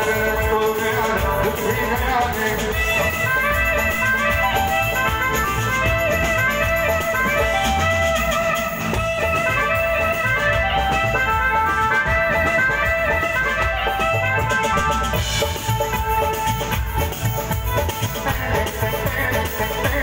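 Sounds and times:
live band playing instrumental: 0:00.0 - 0:20.0.

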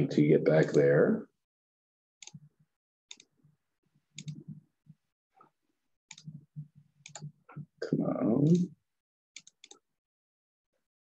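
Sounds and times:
keyboard and mouse clicks: 0:02.2 - 0:02.5, 0:03.1 - 0:03.3, 0:04.1 - 0:04.6, 0:06.1 - 0:07.7, 0:09.4 - 0:09.8.

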